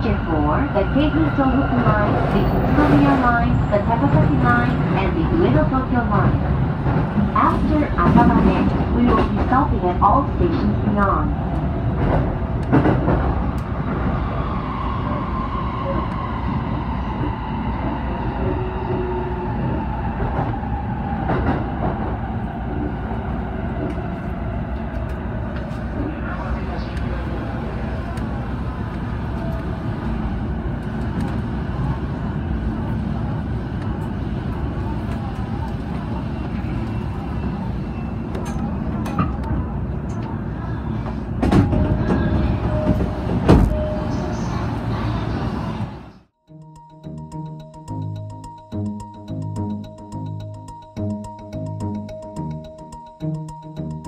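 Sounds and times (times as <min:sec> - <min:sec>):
train rumble: 0:00.0 - 0:46.4.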